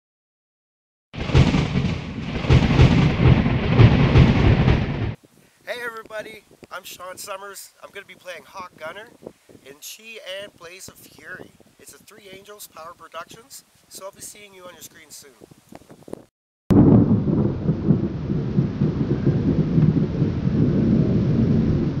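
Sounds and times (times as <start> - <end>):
thunder-like rumble: 1.2 - 5.2, 16.7 - 22.0
rain-like hiss: 1.6 - 16.2.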